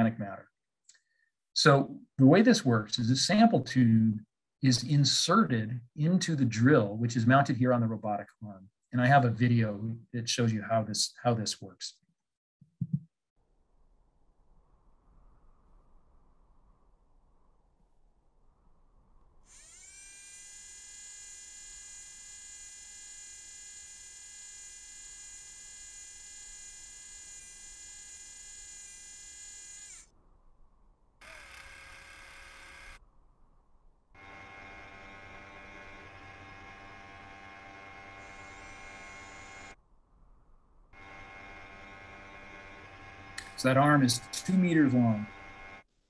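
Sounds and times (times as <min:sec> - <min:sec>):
electric motor whine: 0:19.5 - 0:30.1, 0:31.2 - 0:33.0, 0:34.2 - 0:39.8, 0:41.0 - 0:45.8.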